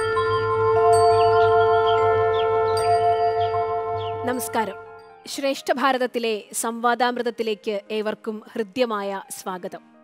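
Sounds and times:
low held drone: 0:00.0 - 0:05.1
ringing bell-like notes: 0:00.0 - 0:05.2.

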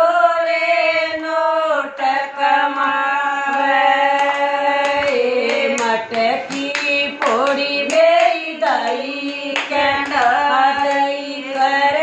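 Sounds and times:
women singing together: 0:00.0 - 0:12.0
hand claps: 0:02.0 - 0:12.0.

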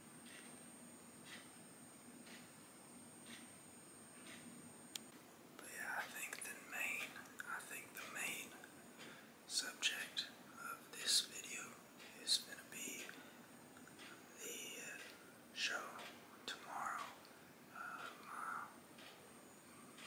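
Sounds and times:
man whispering: 0:05.6 - 0:08.7, 0:09.5 - 0:13.2, 0:14.3 - 0:18.8.

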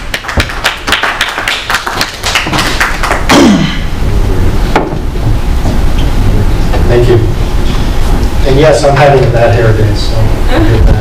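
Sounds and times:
small audience applauding: 0:00.0 - 0:03.4.

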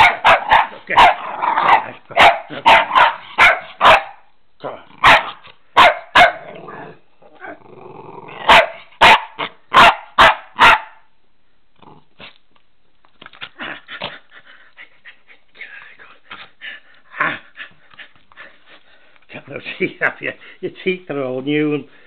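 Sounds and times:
puppy barking: 0:00.0 - 0:04.3, 0:05.0 - 0:06.5, 0:08.4 - 0:11.1
puppy growling: 0:01.1 - 0:02.7, 0:06.3 - 0:08.6, 0:11.8 - 0:12.4, 0:13.3 - 0:14.5.

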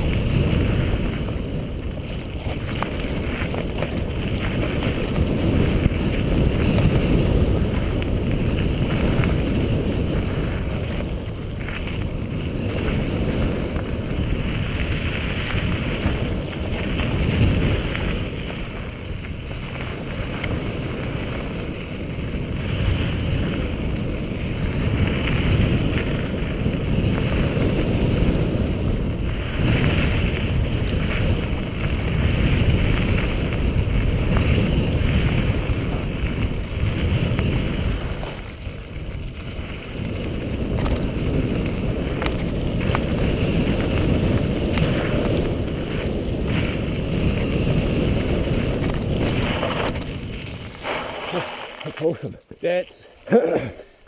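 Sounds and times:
bike rattling: 0:00.0 - 0:52.3
wind buffeting microphone: 0:00.0 - 0:53.7
tyres rolling over gravel: 0:00.0 - 0:54.0.

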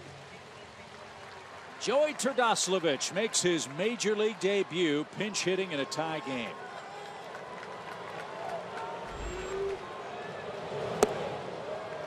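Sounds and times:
crowd murmur: 0:08.5 - 0:12.0.

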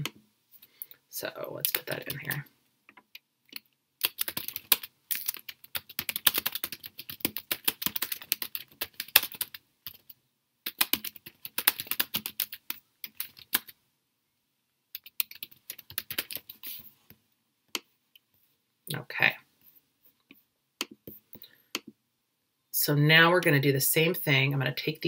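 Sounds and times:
typing on keyboard: 0:03.5 - 0:13.8, 0:14.9 - 0:16.6.

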